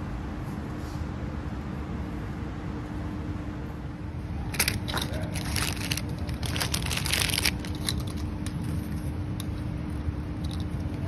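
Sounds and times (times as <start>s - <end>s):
low background hum: 0.0s - 11.0s
crinkling handling noise: 4.5s - 11.0s.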